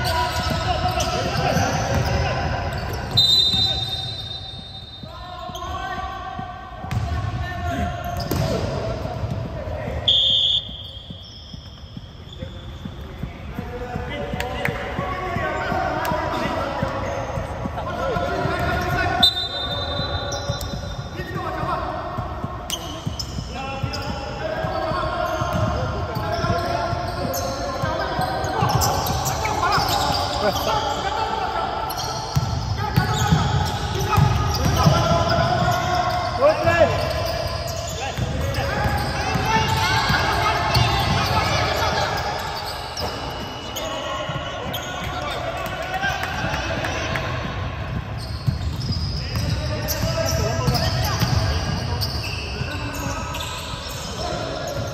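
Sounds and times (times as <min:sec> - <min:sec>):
referee's whistle: 0:00.0 - 0:05.9, 0:10.0 - 0:13.0, 0:18.6 - 0:21.4, 0:22.7 - 0:31.1, 0:31.9 - 0:45.6, 0:48.2 - 0:54.9
players calling out: 0:00.0 - 0:54.9
shoes squeaking: 0:00.0 - 0:54.9
basketball dribbling on wooden floor: 0:04.6 - 0:09.6, 0:47.7 - 0:51.8.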